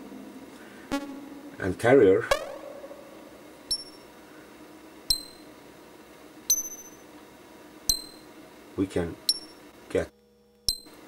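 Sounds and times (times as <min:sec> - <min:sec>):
percussive synthesizer pings: 0:03.7 - 0:04.1, 0:05.1 - 0:05.4, 0:06.5 - 0:07.0, 0:07.9 - 0:08.2, 0:09.3 - 0:09.6.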